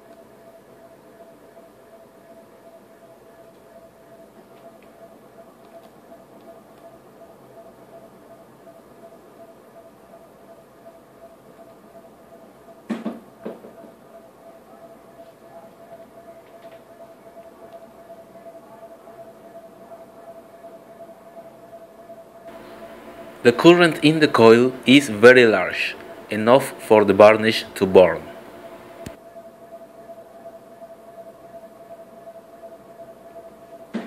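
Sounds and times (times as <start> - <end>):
electrical coil whine: 22.5 - 29.2
sharp clicks: 28.4 - 29.2.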